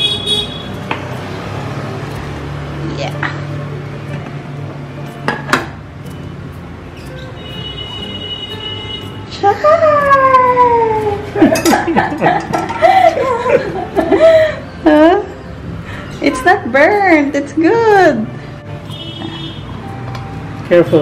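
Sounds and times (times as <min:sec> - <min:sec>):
metal pan clinking on plate: 0:11.4 - 0:12.9.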